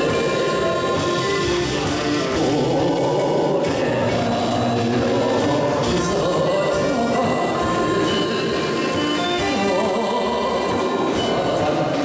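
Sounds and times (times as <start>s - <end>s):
accordion: 0.0s - 12.0s
guitar: 0.0s - 12.0s
live band music: 0.0s - 12.0s
saxophone: 0.0s - 12.0s.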